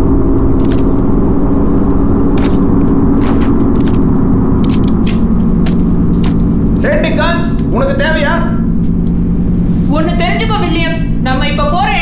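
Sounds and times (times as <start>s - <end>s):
low engine drone: 0.0s - 12.0s
person speaking: 6.8s - 8.6s.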